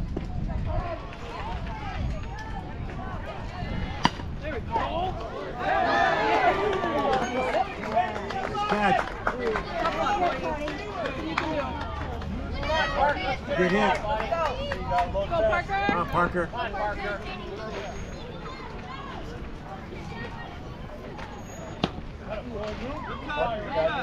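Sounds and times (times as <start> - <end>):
wind rumble on microphone: 0.0 - 5.6, 12.5 - 16.4
crowd shouting and cheering: 0.2 - 24.0
bat cracking ball: 4.0 - 4.4.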